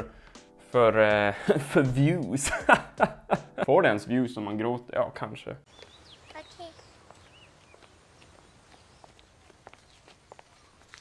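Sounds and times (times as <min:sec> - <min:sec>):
faint footsteps: 0:05.7 - 0:11.0.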